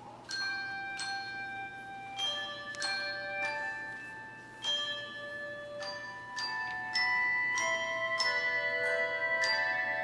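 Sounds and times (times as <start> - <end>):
handbell choir ringing chords: 0.3 - 10.0.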